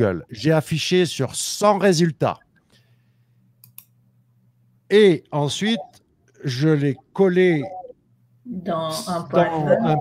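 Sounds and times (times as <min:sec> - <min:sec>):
faint low hum: 0:00.0 - 0:10.0
computer mouse clicks: 0:03.6 - 0:03.9.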